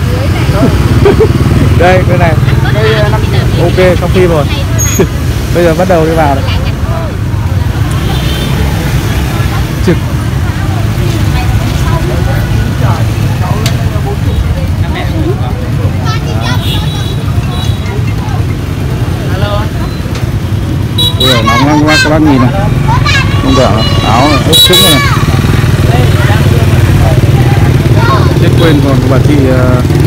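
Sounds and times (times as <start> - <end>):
low rumble of street market: 0.0 - 30.0.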